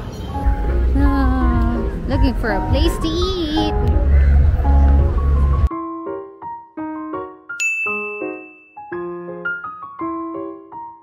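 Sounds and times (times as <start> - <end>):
soft keyboard melody: 0.0 - 11.0
bright bell-like ding: 7.6 - 9.0.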